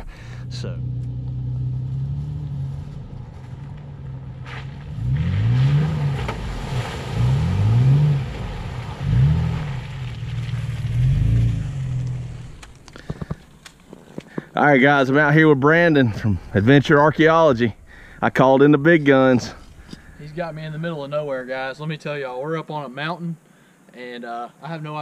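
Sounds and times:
truck engine revving: 0.0s - 13.0s.

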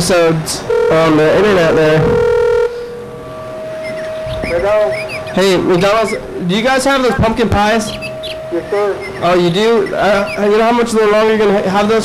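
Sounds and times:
steady telephone tone: 0.6s - 11.7s.

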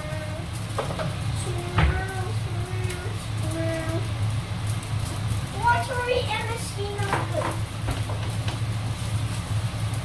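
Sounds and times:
low kitchen hum: 0.0s - 10.0s
stir-frying: 0.0s - 10.0s.

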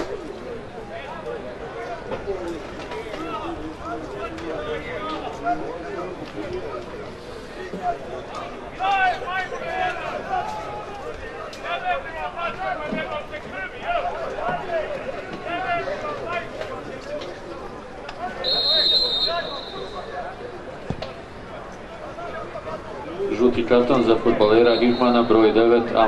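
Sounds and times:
men talking and calling out: 0.0s - 26.0s
referee's whistle: 18.4s - 20.2s, 24.6s - 25.5s.

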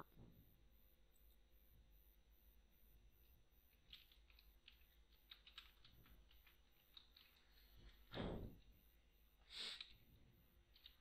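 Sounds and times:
typing on computer keyboard: 3.7s - 7.7s, 10.7s - 11.0s.

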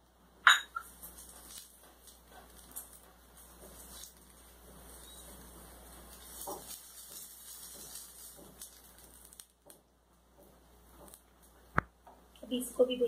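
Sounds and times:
spatula scraping: 0.7s - 9.4s
toast sizzling in a pan: 0.8s - 9.9s.

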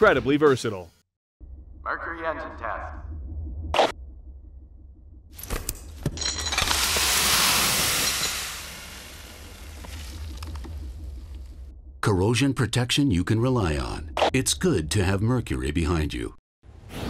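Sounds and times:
salt pouring onto umbrella: 6.6s - 10.2s.

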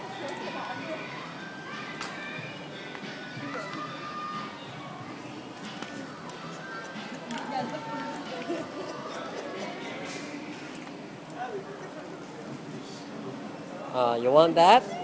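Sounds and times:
background music: 0.0s - 11.3s
indistinct voices: 0.0s - 11.6s.

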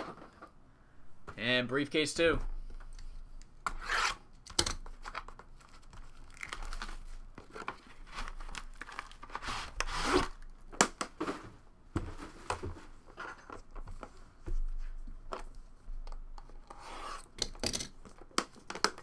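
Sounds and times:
packaging tearing and crinkling: 5.6s - 7.2s, 8.0s - 10.5s.

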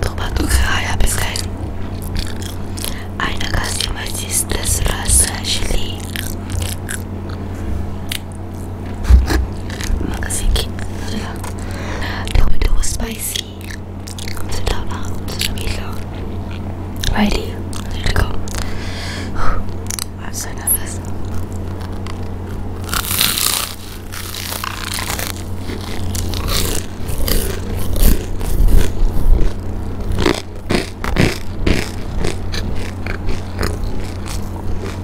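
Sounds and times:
chewing with crunches: 0.0s - 12.8s, 13.4s - 18.9s, 19.7s - 20.2s, 20.9s - 35.0s
loud crunchy bite: 2.0s - 3.1s, 5.3s - 7.4s, 8.0s - 10.0s, 13.6s - 14.5s, 21.1s - 35.0s.

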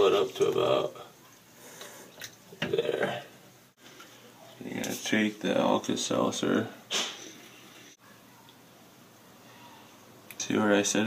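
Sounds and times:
tap water trickling and dripping: 0.0s - 2.8s.

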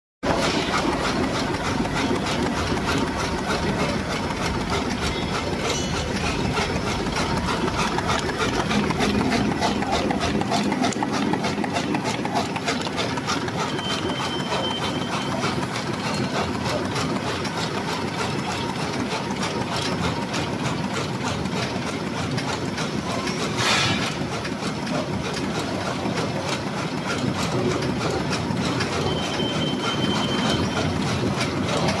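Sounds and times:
conveyor running: 0.2s - 32.0s
die-cutting machine clattering: 0.2s - 32.0s.

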